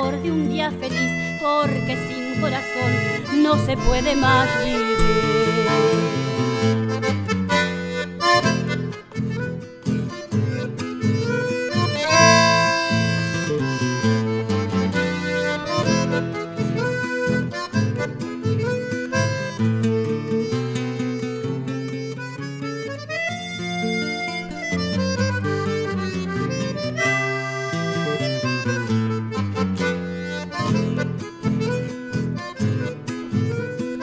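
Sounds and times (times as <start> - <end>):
button accordion melody: 0.0 - 34.0
strummed acoustic guitar: 0.0 - 34.0.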